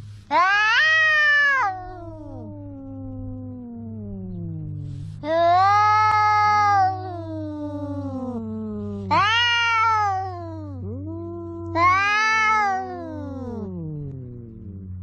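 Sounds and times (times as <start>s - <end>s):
cats yowling in a fight: 0.3s - 3.8s, 5.0s - 8.4s, 9.1s - 13.8s.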